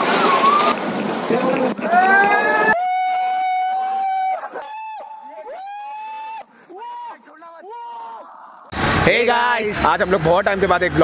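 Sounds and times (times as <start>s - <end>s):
rushing water: 0.0s - 2.8s
people screaming: 1.8s - 8.7s.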